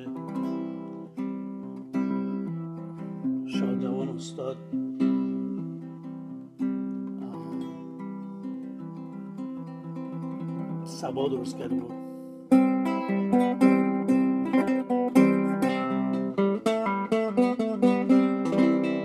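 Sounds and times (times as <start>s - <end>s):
classical guitar melody: 0.0s - 19.0s.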